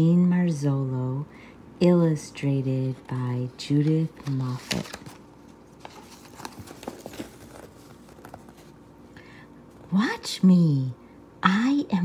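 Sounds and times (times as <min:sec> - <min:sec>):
book pages turning: 0:02.8 - 0:09.0.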